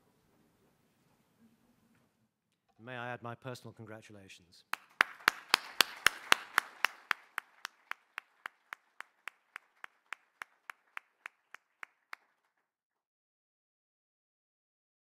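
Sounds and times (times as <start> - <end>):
person clapping: 4.7 - 12.6.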